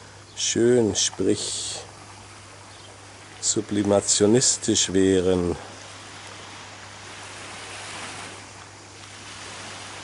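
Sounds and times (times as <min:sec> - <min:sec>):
surf washing onto beach: 0:03.1 - 0:10.0.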